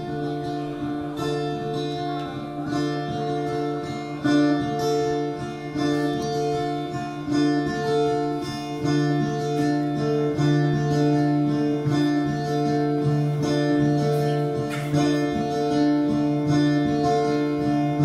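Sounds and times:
fingerpicked acoustic guitar: 0.0 - 18.0.

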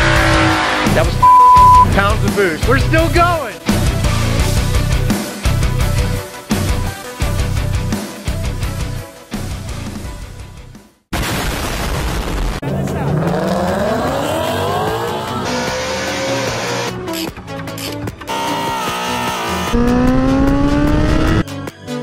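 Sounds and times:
car engine revving: 0.0 - 1.8, 12.7 - 17.1, 18.3 - 21.4
music: 0.0 - 11.1, 12.6 - 22.0.

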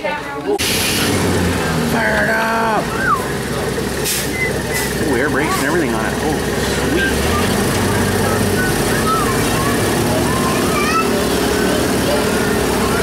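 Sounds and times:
tram engine humming: 0.4 - 13.0.

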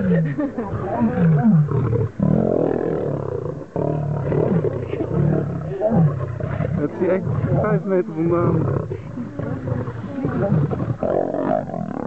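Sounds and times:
lions growling and snarling: 0.0 - 12.0.

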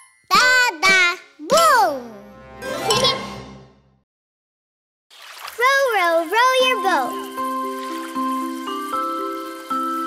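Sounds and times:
water splashing: 5.1 - 10.0.

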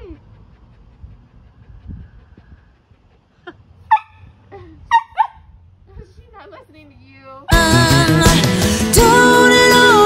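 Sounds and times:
puppy barking high-pitched: 3.9 - 4.2, 4.9 - 5.4
puppy whining yelps: 3.9 - 4.2, 4.9 - 5.4.

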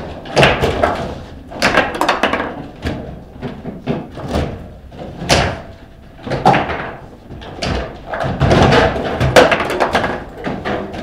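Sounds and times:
table football knocks and clacks: 0.0 - 11.0.

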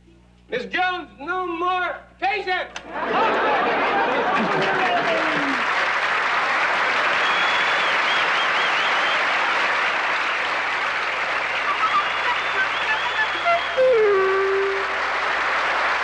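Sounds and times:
audience laughter: 2.8 - 13.9, 14.7 - 16.0
audience applauding: 2.8 - 16.0
high wavering whistle: 11.6 - 14.9.

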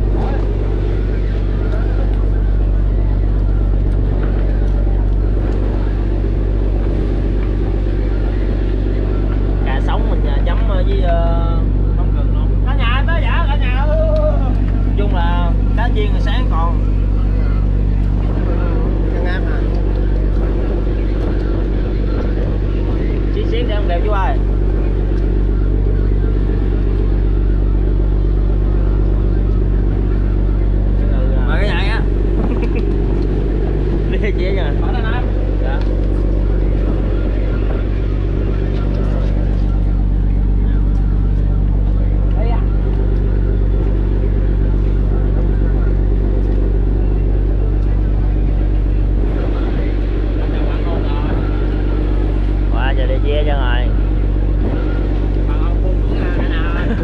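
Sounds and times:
boat engine droning: 0.0 - 57.0
voices talking: 0.0 - 57.0.

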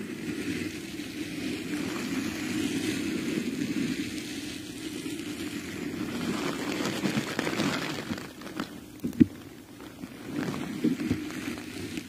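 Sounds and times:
faint hiss: 0.0 - 12.0
hands rubbing microphone: 1.5 - 12.0.

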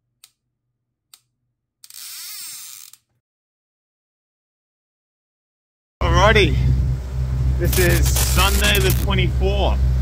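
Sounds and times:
faint electrical hum: 6.0 - 10.0
hissing buzz: 7.6 - 9.1.

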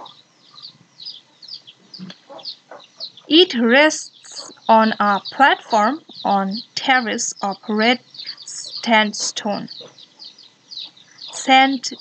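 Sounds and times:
high bird chirps: 0.0 - 12.0.

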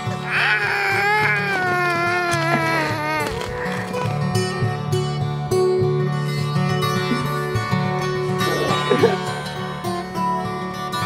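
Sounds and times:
strummed acoustic guitar music: 0.0 - 0.3, 1.0 - 11.0
toddler crying: 0.0 - 4.1.

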